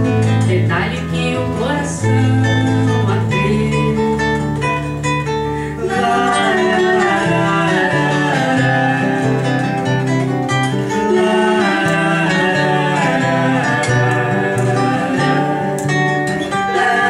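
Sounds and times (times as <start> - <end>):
person singing: 0.0 - 4.9, 5.6 - 17.0
acoustic guitars playing: 0.0 - 17.0.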